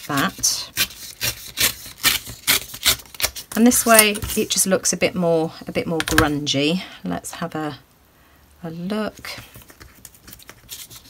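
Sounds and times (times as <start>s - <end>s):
paper tearing: 0.0s - 3.6s, 9.6s - 11.0s.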